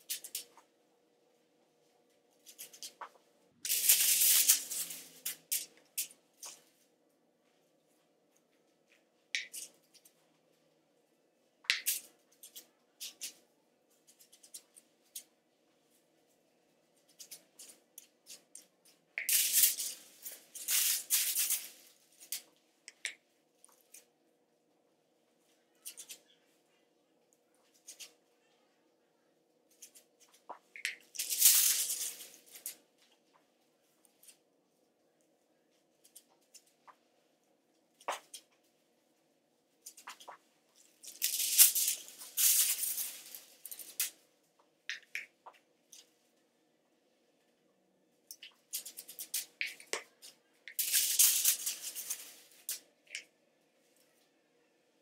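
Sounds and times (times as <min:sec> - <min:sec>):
aluminium foil crinkling: 0:03.6 - 0:06.1, 0:19.2 - 0:22.4, 0:30.9 - 0:32.8, 0:39.9 - 0:44.2, 0:48.7 - 0:52.8.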